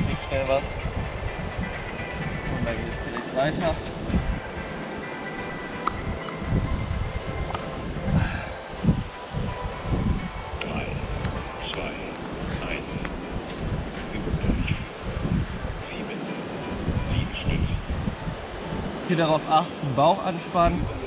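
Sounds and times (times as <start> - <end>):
wind gusting on microphone: 0.0 - 21.0.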